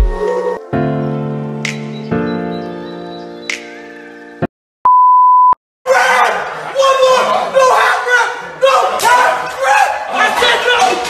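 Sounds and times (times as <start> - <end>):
electronic beep: 4.9 - 5.6
people shouting: 5.9 - 11.0
people laughing: 6.0 - 8.6.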